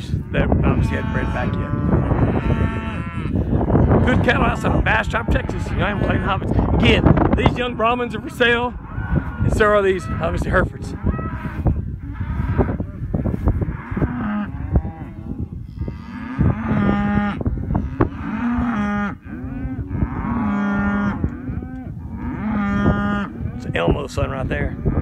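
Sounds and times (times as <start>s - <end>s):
steady low rumble: 0.0s - 15.7s
cattle mooing: 0.0s - 25.0s.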